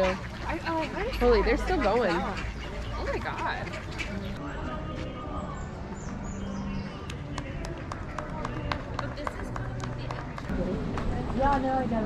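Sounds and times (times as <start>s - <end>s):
footsteps on stone pavement: 0.0s - 12.0s.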